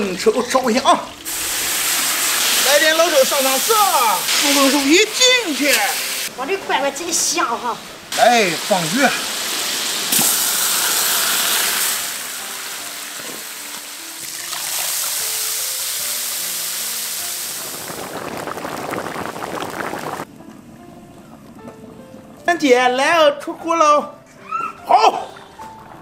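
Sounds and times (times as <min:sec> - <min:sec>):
water pouring: 0:00.0 - 0:06.3, 0:07.2 - 0:20.4
fish sizzling in a wok: 0:01.2 - 0:06.3, 0:08.1 - 0:20.3
soft background music: 0:11.4 - 0:17.9, 0:20.3 - 0:26.0
liquid bubbling: 0:17.2 - 0:22.5.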